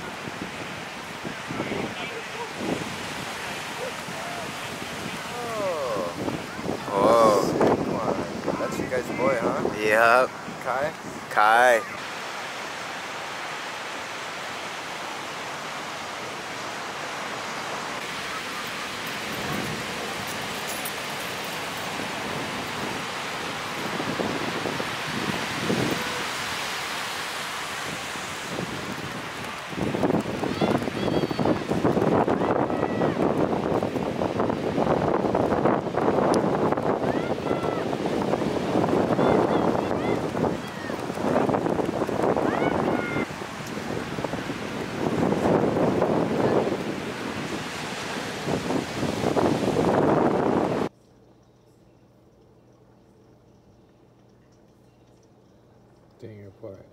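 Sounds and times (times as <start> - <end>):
surf breaking on beach: 0.0 - 50.9.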